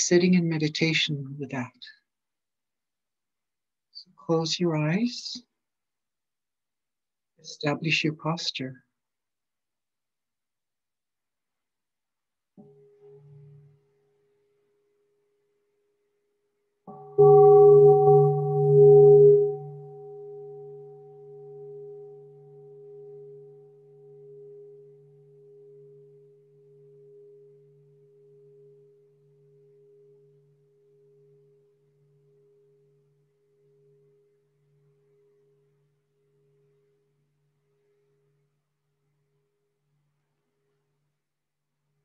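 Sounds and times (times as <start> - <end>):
meditation bell ringing: 16.9 - 28.8.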